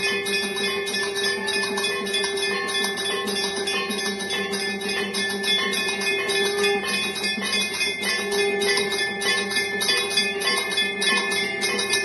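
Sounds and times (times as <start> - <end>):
brass bells ringing: 0.0 - 12.0.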